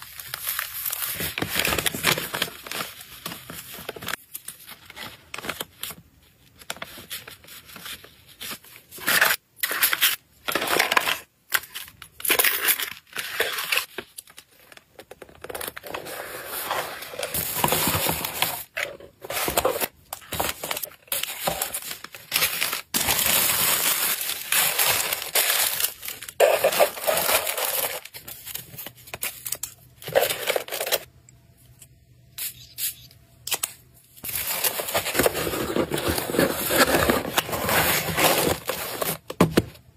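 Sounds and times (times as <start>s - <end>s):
paper and cardboard crinkling: 0.0s - 31.1s, 34.2s - 39.9s.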